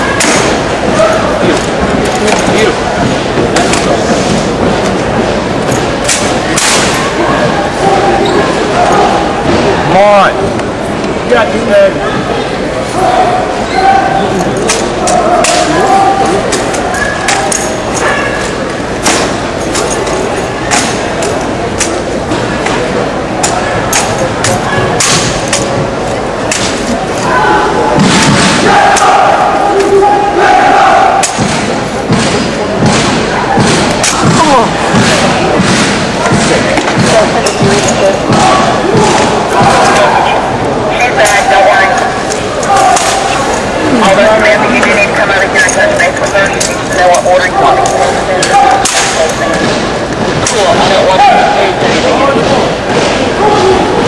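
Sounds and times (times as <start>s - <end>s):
crowd chatter in a hall: 0.0s - 54.0s.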